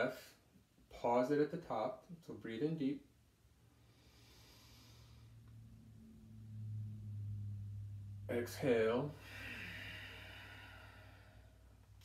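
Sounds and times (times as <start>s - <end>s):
low steady hum: 0.4s - 12.0s.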